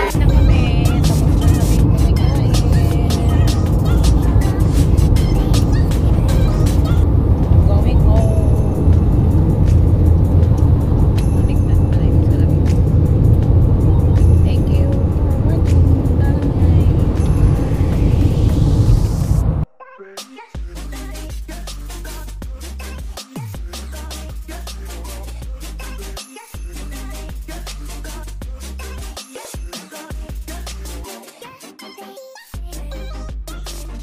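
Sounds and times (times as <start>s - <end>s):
car road and engine rumble: 0.0s - 19.7s.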